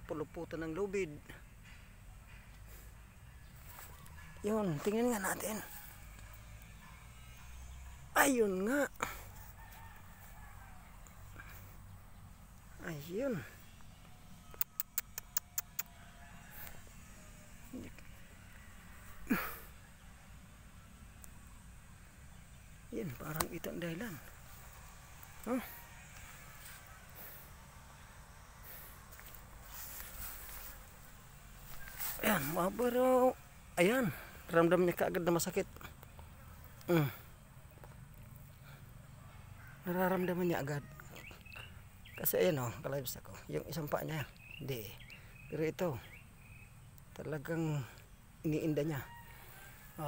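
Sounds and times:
faint outdoor background: 0:00.0 - 0:50.0
sharp clicks: 0:14.5 - 0:16.0.

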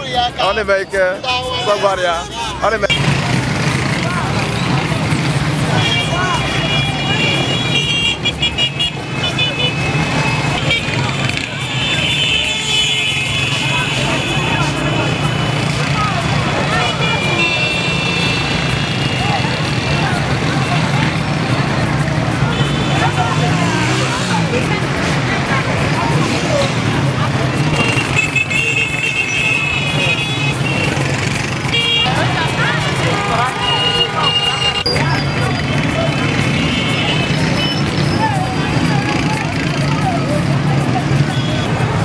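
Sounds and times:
babble of many voices: 0:00.0 - 0:42.0
motorcycle engines humming: 0:00.0 - 0:42.0
vehicle horns tooting: 0:01.4 - 0:24.4, 0:25.8 - 0:42.0.

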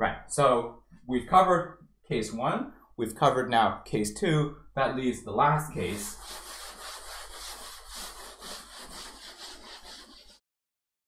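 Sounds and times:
eraser rubbing on a chalkboard: 0:05.8 - 0:10.4.

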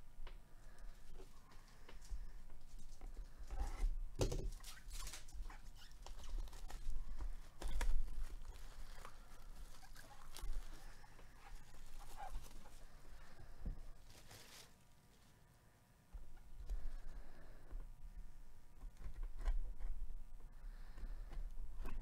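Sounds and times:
paper packaging rustling: 0:04.5 - 0:15.4.

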